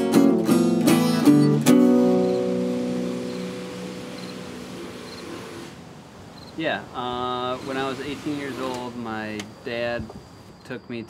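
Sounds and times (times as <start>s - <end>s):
acoustic guitar chord ringing: 0.0s - 5.5s.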